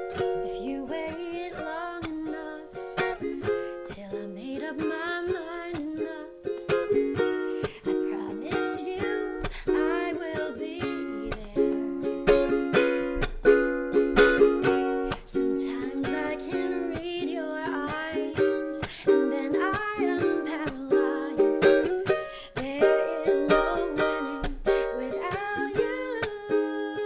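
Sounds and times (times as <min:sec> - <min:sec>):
ukulele strumming: 0:00.0 - 0:27.0
woman singing: 0:00.1 - 0:12.8, 0:14.6 - 0:27.0.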